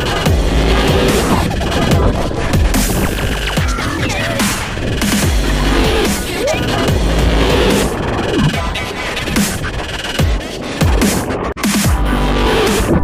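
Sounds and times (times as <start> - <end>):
falling bass sweeps: 0.0 - 8.7
electronic music with heavy bass: 0.0 - 13.0.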